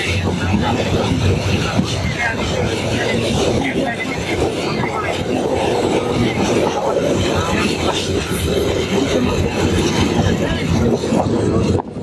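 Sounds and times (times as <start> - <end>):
indistinct voices: 0.0 - 12.0
moving train running noise: 0.0 - 12.0.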